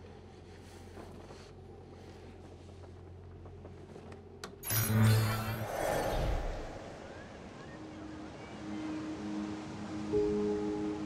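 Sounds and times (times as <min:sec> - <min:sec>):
sci-fi electronic surge: 0:04.6 - 0:07.6.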